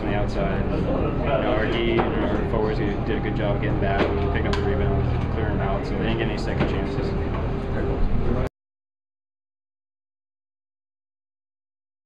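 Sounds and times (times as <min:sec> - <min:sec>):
man speaking: 0:00.0 - 0:07.3
low hum: 0:00.0 - 0:08.5.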